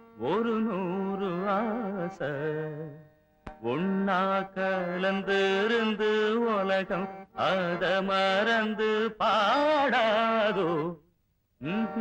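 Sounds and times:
person singing ornamented melody: 0.0 - 11.0, 11.6 - 12.0.

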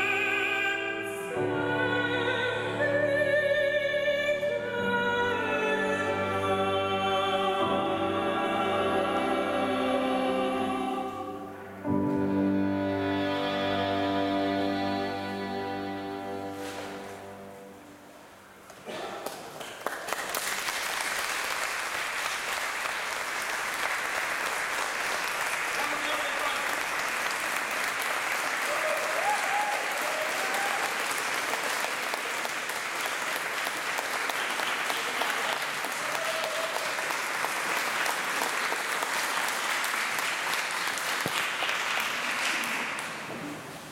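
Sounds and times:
audience applauding: 19.2 - 43.9.

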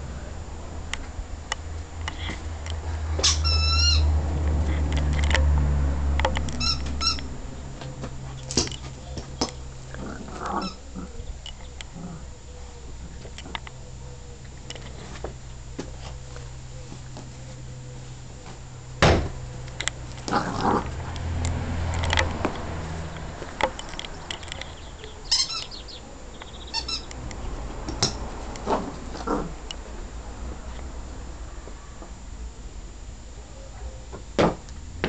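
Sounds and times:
puppy whining: 3.2 - 4.1, 9.9 - 14.4, 25.0 - 27.1
puppy rough vocal sound: 20.3 - 21.2.

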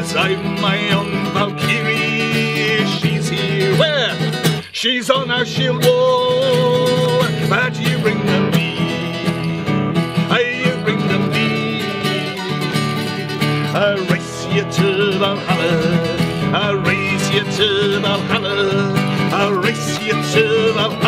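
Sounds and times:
acoustic guitar strumming: 0.0 - 21.0
people singing folk song: 0.0 - 21.0.

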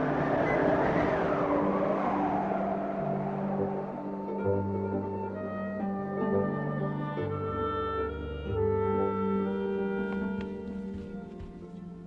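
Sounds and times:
howling wind gust: 0.0 - 8.1
orchestral score: 0.0 - 12.0.

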